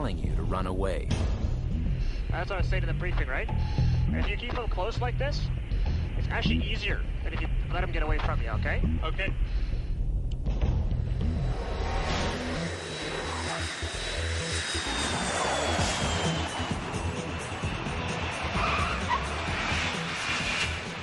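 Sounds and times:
background music: 0.0s - 21.0s
fighter jets passing with whine: 10.8s - 21.0s.

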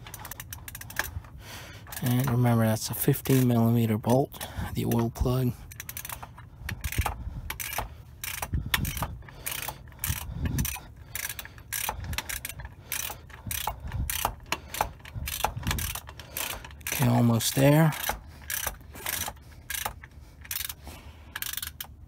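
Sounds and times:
ratchet wrench clicking: 0.0s - 3.8s, 4.8s - 22.0s.

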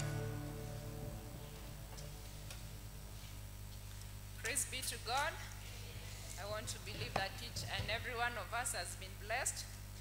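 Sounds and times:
keyboard chord: 0.0s - 3.0s
low electrical hum: 0.0s - 10.0s.

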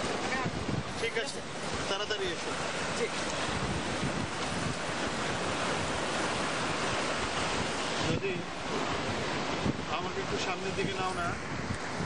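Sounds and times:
ocean surf washing ashore: 0.0s - 12.0s
wind buffeting microphone: 0.0s - 12.0s.

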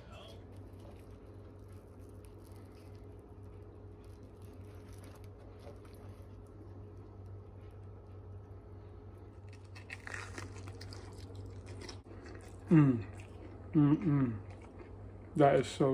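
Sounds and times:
crunching bite of toasted bread: 0.0s - 7.3s, 9.3s - 13.7s
faint low hum: 0.0s - 15.9s.

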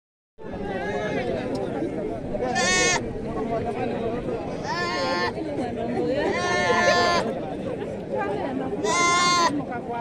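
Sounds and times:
chatter of people: 0.4s - 10.0s
goat bleating: 2.5s - 3.0s, 4.5s - 5.3s, 6.3s - 7.3s, 8.8s - 9.6s.

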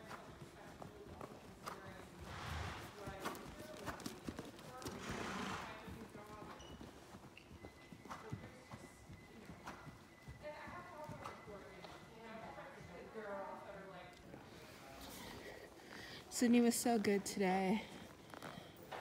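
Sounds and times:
pony hoofbeats on soft sand: 0.0s - 15.0s, 16.2s - 19.0s.

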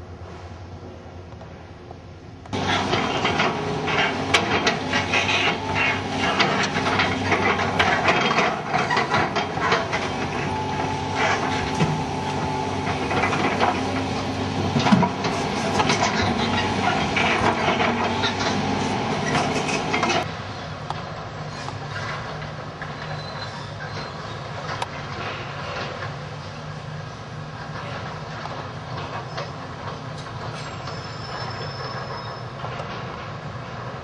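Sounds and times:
excavator diesel engine running: 2.5s - 34.0s.

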